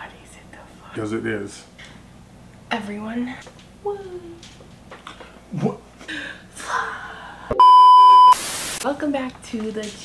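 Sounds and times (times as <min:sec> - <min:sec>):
censor bleep: 0:07.6 - 0:08.4
static hiss: 0:08.1 - 0:08.9.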